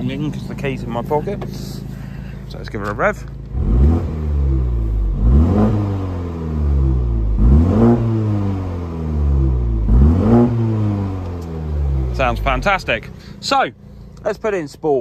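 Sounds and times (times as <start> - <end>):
car engine revving: 0.0 - 14.2.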